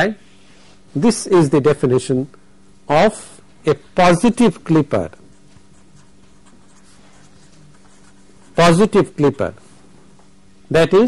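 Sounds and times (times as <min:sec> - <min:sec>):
steady low hum: 0:00.0 - 0:11.0
marker pen scratching on paper: 0:05.1 - 0:09.2.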